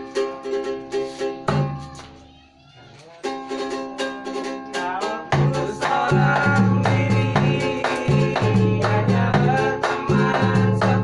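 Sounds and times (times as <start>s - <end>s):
ukulele strummed: 0.0s - 11.0s.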